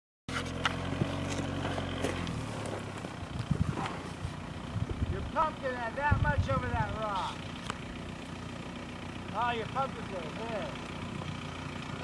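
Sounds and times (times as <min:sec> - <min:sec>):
diesel engine running at low revs: 0:00.3 - 0:12.0.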